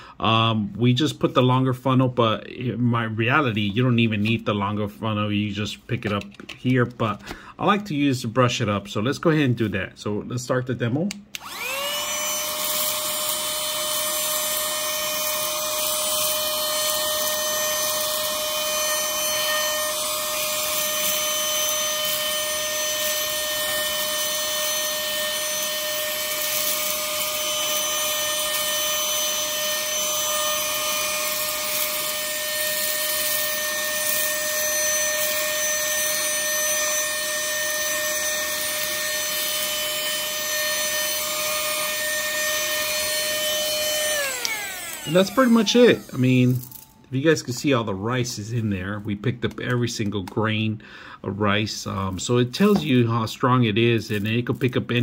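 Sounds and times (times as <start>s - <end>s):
mini vacuum whining: 11.3s - 47.6s.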